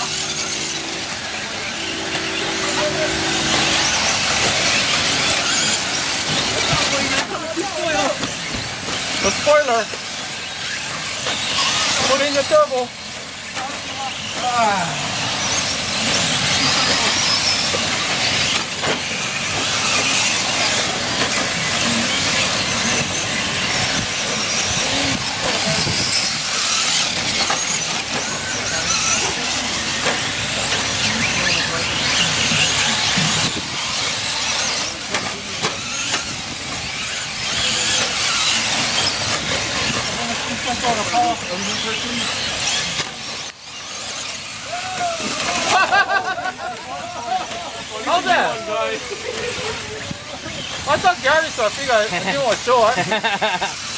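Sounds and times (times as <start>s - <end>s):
electric motors whining: 0.0s - 53.9s.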